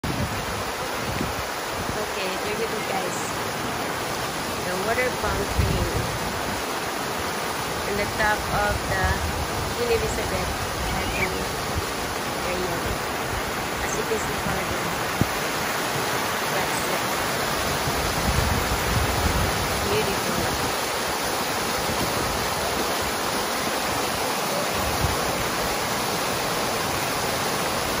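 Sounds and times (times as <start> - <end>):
fountain water splashing: 0.0 - 28.0.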